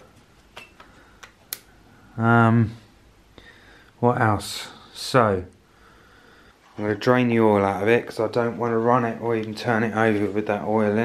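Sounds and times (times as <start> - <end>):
faint room background: 0.0 - 11.0.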